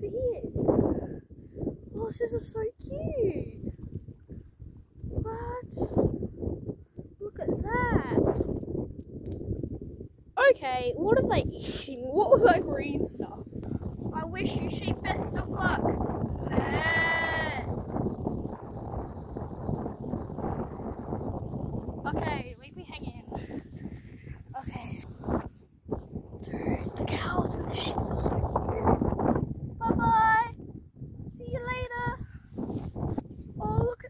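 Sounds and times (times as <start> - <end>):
wind rumble on microphone: 0.0 - 34.0.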